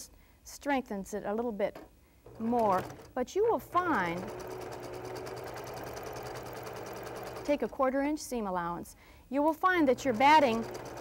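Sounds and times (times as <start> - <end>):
electric sewing machine stitching: 2.3 - 7.9, 9.6 - 11.0.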